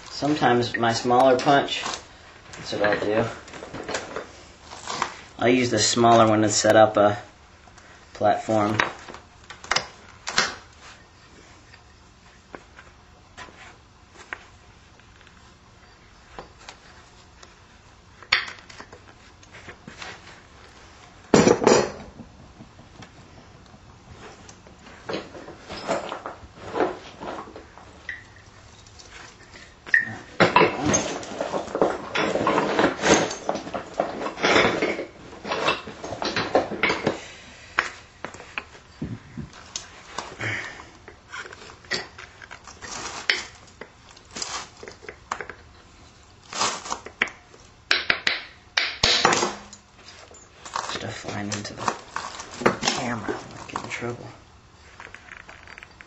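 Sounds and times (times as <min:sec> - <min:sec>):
sharp crack of stone: 0:46.5 - 0:49.7.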